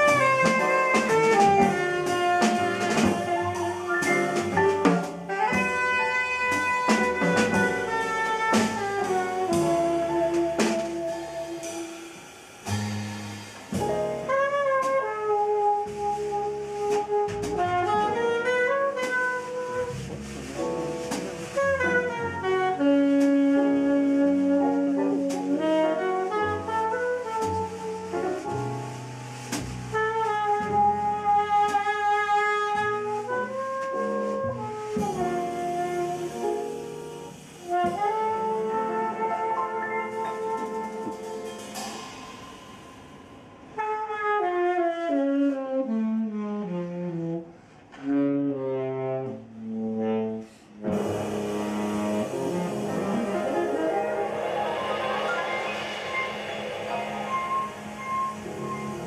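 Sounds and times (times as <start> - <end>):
saxophone: 0.0 - 12.1, 14.2 - 20.3, 21.1 - 28.9, 29.9 - 42.1, 43.7 - 59.0
drums: 0.0 - 48.9, 50.8 - 59.0
double bass: 0.0 - 59.0
piano: 0.0 - 59.0.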